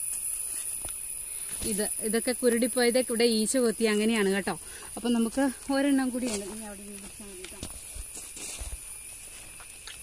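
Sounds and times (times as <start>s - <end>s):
footsteps rustling through grass: 5.4s - 10.0s.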